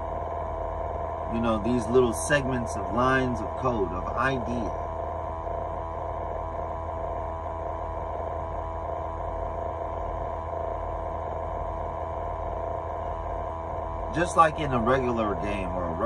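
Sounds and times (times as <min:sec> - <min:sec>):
truck idling hum: 0:00.0 - 0:16.0.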